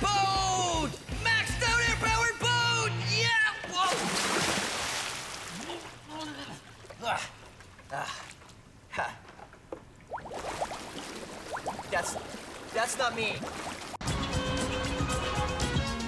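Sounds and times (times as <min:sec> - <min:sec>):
music: 0:00.0 - 0:03.4, 0:14.0 - 0:16.0
water sloshing and splashing: 0:00.7 - 0:01.2, 0:03.6 - 0:14.0.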